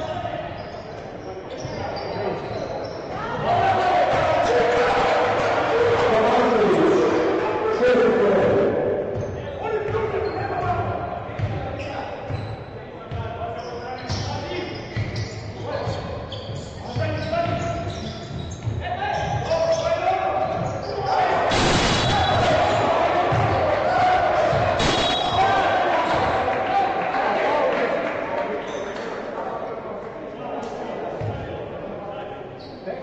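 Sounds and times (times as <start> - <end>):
voices in echoing hall: 0.0 - 33.0.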